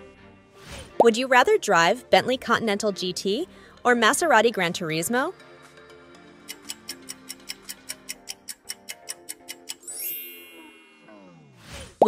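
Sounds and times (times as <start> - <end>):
background music: 0.0 - 12.0
clock-like ticking: 6.5 - 9.9
bright chime: 9.8 - 11.5.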